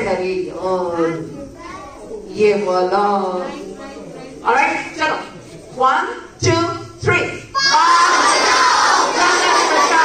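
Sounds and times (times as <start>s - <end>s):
crowd of children shouting: 7.6s - 10.0s.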